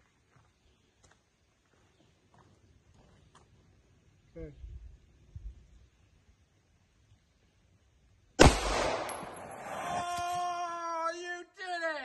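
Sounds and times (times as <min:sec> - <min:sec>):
rifle shot: 0:08.4 - 0:10.1.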